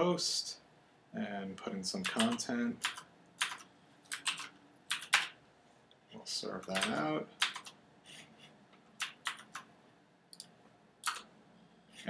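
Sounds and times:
computer keyboard keystrokes: 2.0s - 5.3s, 6.6s - 7.8s, 9.0s - 9.7s, 10.3s - 11.3s.

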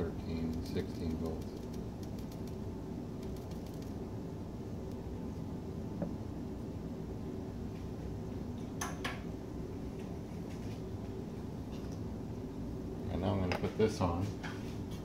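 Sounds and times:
low mechanical hum: 0.0s - 15.0s.

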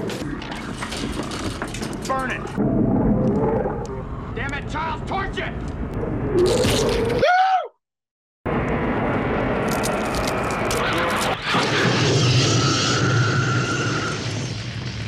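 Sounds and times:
roar of flamethrower fire: 8.5s - 15.0s
long held screech: 11.8s - 14.4s.

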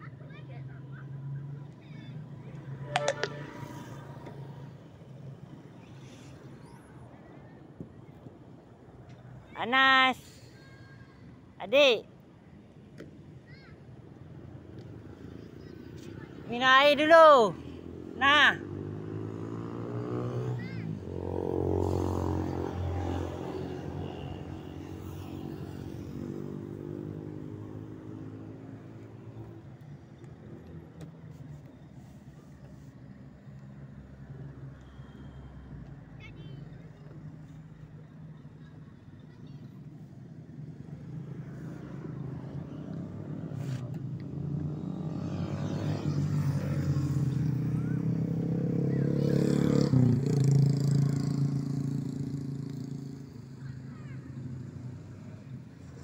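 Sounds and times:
motor vehicles passing by: 0.0s - 56.0s.

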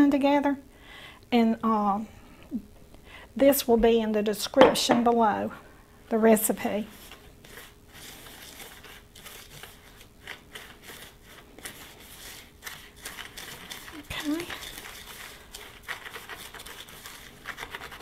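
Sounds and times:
whisk stirring sugar in bowl: 6.6s - 18.0s.

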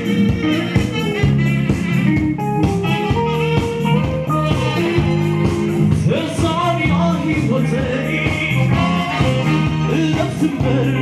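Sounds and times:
electric bass line: 0.0s - 11.0s
saxophone melody: 0.0s - 11.0s
steady beat: 0.0s - 11.0s.

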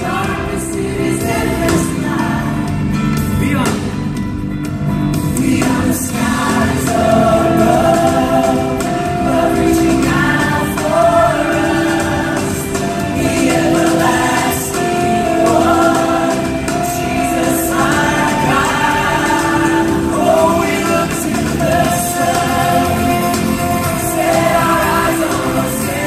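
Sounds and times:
choir singing: 0.0s - 3.1s, 5.2s - 26.0s
band accompaniment: 0.0s - 26.0s.

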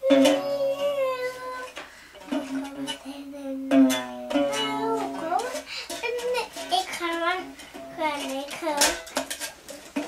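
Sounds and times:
toddler singing long note: 0.0s - 1.8s
acoustic guitar strum: 3.7s - 9.6s.

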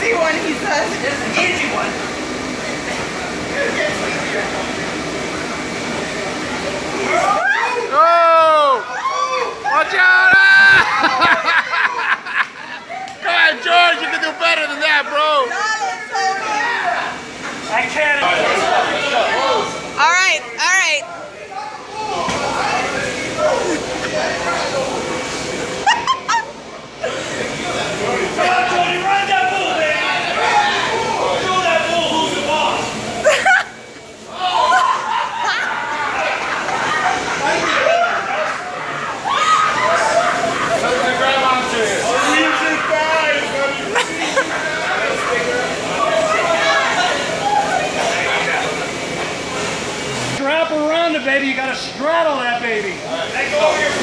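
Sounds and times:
murmur of voices: 0.0s - 54.0s.

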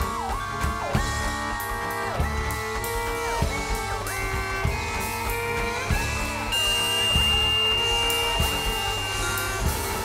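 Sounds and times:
drum kit: 0.0s - 10.0s.

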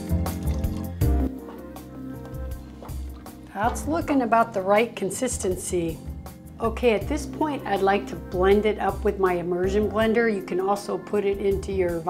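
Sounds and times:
liquid pouring into pot: 0.0s - 1.4s
background music with held tones: 0.0s - 12.0s.

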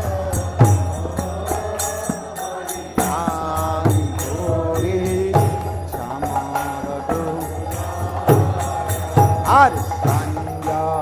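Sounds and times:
hand drums playing rhythm: 0.0s - 11.0s.

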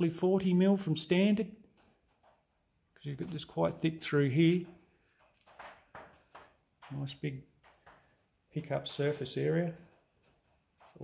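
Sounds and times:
man speaking: 0.0s - 1.6s, 3.0s - 4.8s, 6.8s - 7.5s, 8.5s - 9.9s.

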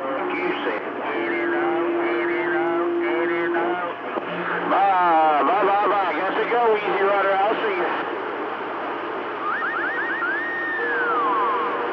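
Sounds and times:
steady low tone: 0.0s - 5.4s
radio channel hiss: 0.0s - 11.9s
quick rising whistle tones: 9.4s - 11.7s
long sliding whistle tone: 9.4s - 11.9s.

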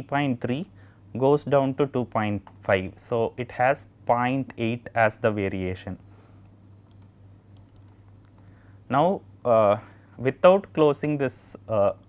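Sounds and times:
low steady hum: 0.0s - 12.0s
keyboard and mouse clicks: 6.8s - 8.4s.

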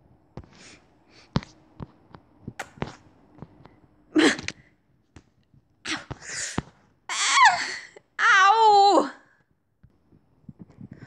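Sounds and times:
lip clicks and smacks: 2.6s - 2.9s.

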